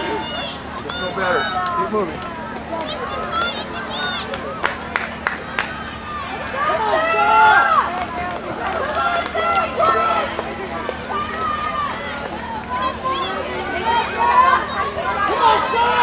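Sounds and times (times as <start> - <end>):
spectators cheering and shouting: 0.0 - 16.0
hand claps: 4.3 - 5.8.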